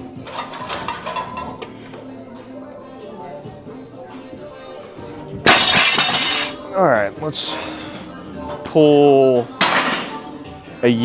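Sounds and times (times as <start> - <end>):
background music: 0.0 - 11.0
barbell plates clinking: 0.2 - 1.7, 5.5 - 6.6.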